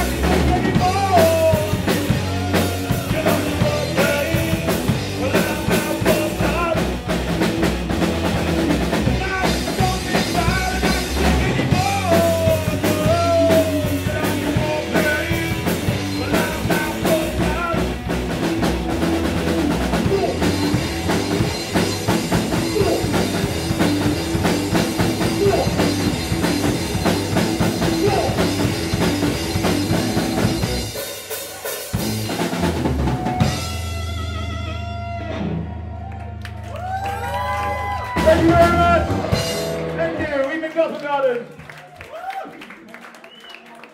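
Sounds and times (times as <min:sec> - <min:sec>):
man singing: 0:00.0 - 0:07.2, 0:08.9 - 0:18.1, 0:19.9 - 0:20.8, 0:22.5 - 0:23.4, 0:25.0 - 0:26.1, 0:27.6 - 0:28.8, 0:38.2 - 0:39.2
rock band playing live: 0:00.0 - 0:41.6.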